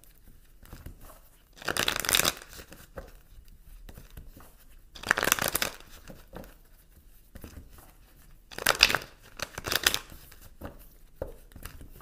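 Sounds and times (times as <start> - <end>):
soft card rustles: 0.0 - 12.0
cards being riffled: 1.6 - 2.8, 5.0 - 6.1, 8.5 - 10.4.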